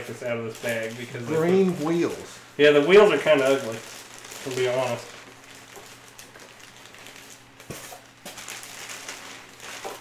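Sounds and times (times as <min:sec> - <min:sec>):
plastic bag rustling: 0:00.0 - 0:10.0.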